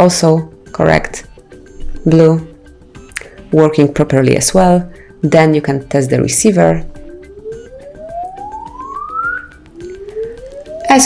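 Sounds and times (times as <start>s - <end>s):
rising pure tone sweep: 7.1s - 11.0s.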